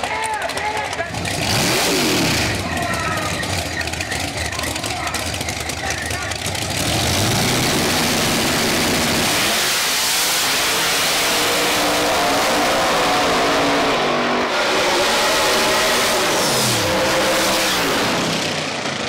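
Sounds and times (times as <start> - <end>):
drag car engines revving: 0.0 - 19.0.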